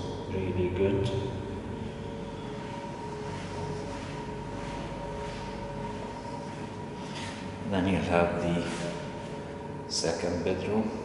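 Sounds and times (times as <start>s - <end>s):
air conditioning hum: 0.0s - 11.0s.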